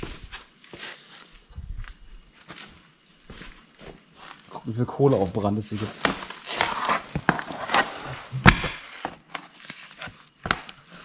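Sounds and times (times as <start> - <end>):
cardboard rustling and scraping: 5.7 - 11.0.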